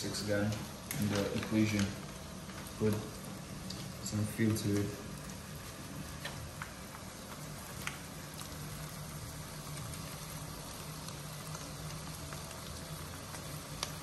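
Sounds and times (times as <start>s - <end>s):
food sizzling in oil: 0.0s - 14.0s.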